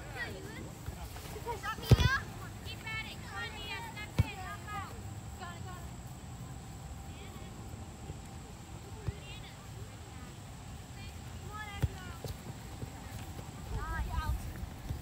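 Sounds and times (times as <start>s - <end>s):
soccer ball kicked: 1.8s - 2.3s, 4.0s - 4.4s, 11.7s - 15.0s.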